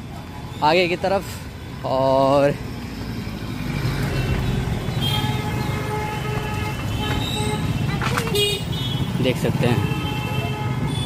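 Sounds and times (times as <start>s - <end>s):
traffic engines rumbling: 0.0s - 11.0s.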